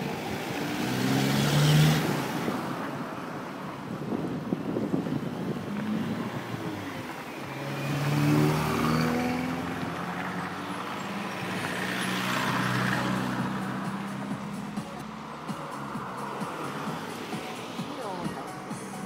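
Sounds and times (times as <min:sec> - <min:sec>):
car engine hum: 0:00.0 - 0:19.0
road noise: 0:00.0 - 0:19.0.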